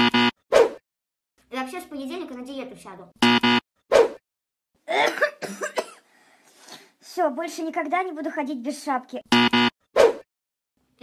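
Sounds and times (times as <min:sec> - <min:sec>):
woman coughing: 0:04.9 - 0:06.0.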